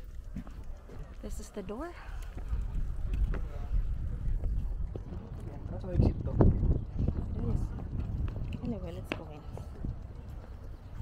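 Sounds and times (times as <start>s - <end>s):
faint voices of people: 0.0s - 11.0s
wind buffeting microphone: 0.0s - 11.0s.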